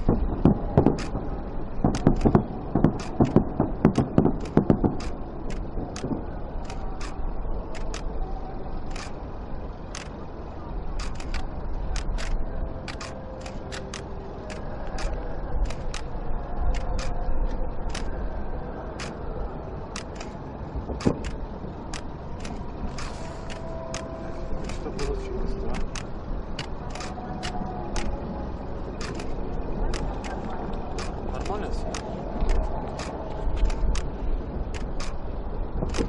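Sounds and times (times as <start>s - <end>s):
low rumble: 0.0s - 36.0s
sharp clicks: 0.8s - 1.2s, 1.9s - 8.1s, 11.0s - 16.1s, 21.0s - 25.2s, 25.8s - 28.2s, 29.0s - 30.4s, 31.0s - 34.1s.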